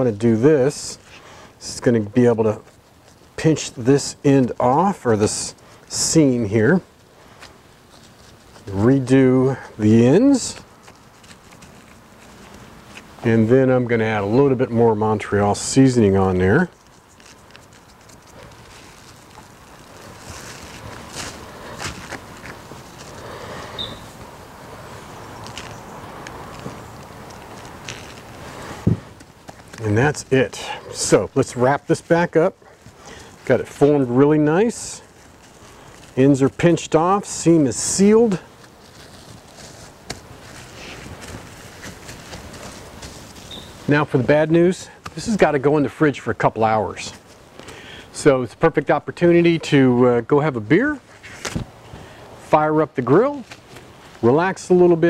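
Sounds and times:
plastic wrap crinkling: 16.4s - 23.3s, 25.2s - 28.5s.

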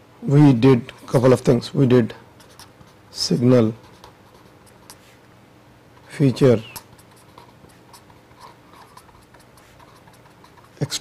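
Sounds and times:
marker pen writing on paper: 3.7s - 5.2s, 6.0s - 11.0s.

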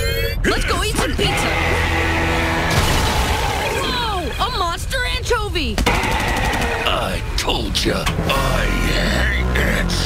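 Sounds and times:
mechanical sound effect: 5.8s - 7.1s.

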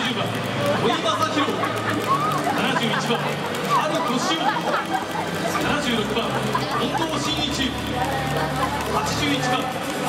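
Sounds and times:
crowd chattering and calling out: 0.0s - 10.0s
low steady background music: 0.0s - 10.0s.

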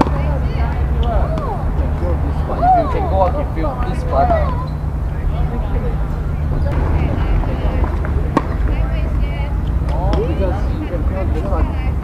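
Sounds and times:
steady low rumble: 0.0s - 12.0s
voices talking: 0.0s - 12.0s.

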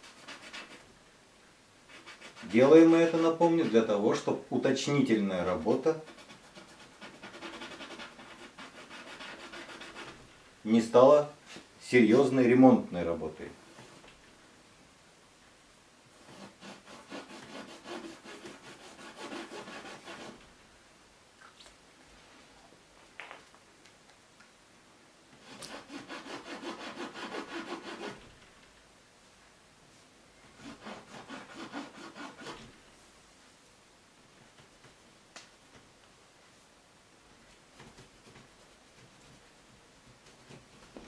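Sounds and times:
hand rubbing on canvas: 5.6s - 10.2s, 16.2s - 20.4s.

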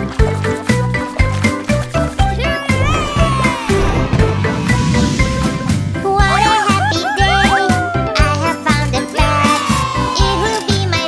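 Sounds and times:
children's song backing music: 5.6s - 11.0s.

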